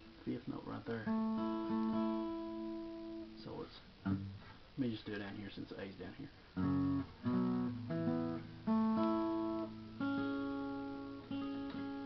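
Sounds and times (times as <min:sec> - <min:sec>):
acoustic guitar notes picked: 0:00.0 - 0:04.6, 0:06.5 - 0:12.0.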